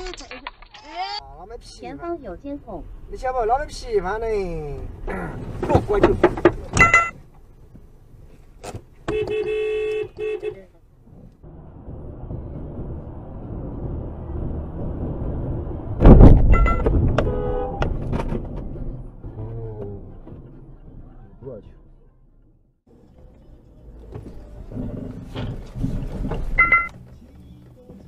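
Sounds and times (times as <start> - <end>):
car road noise at speed: 1.4 - 28.0
car horn: 9.0 - 10.7, 16.5 - 18.0
loud low thump: 15.9 - 21.3.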